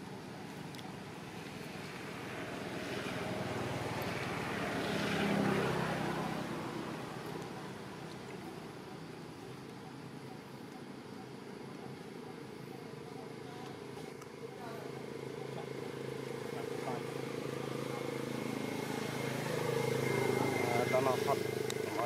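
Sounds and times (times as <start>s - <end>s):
steady motor hum: 0.0s - 22.0s
faint voices: 5.2s - 22.0s.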